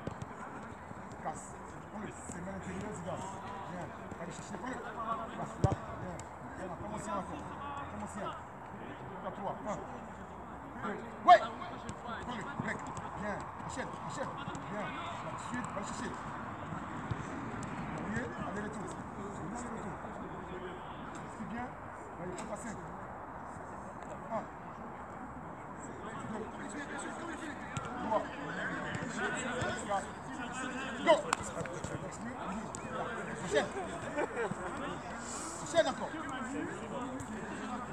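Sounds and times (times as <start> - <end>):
football kick thud: 5.6 - 5.9.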